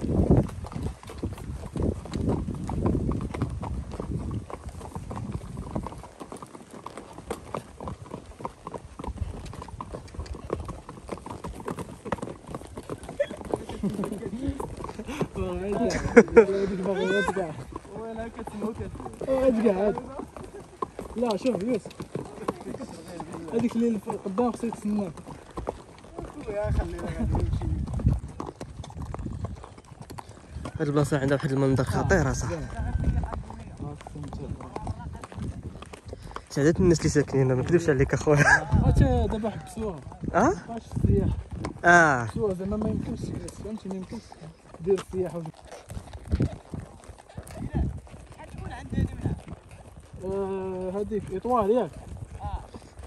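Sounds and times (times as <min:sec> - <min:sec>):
horse hoofbeats on dirt: 0:00.0 - 0:53.0
people talking: 0:15.4 - 0:20.2.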